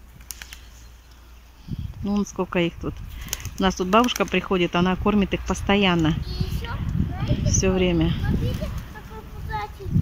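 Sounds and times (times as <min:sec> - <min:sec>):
pigeon wing flaps: 0:00.0 - 0:00.8, 0:03.0 - 0:04.5.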